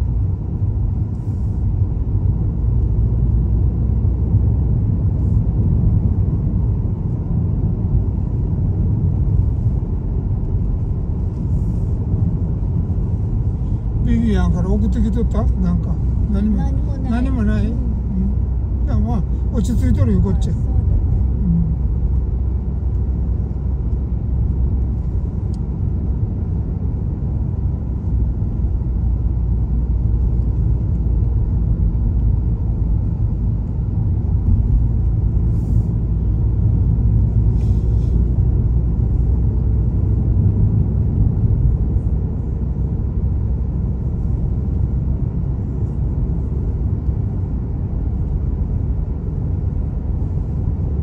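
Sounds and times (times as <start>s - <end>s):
car driving on paved road: 0.0s - 51.0s.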